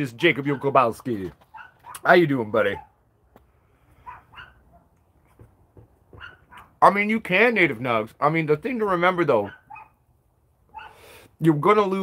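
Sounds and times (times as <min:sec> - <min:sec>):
small dogs barking and yipping: 0:00.2 - 0:03.0, 0:04.0 - 0:05.0, 0:06.1 - 0:06.8, 0:09.4 - 0:10.0, 0:10.7 - 0:11.0.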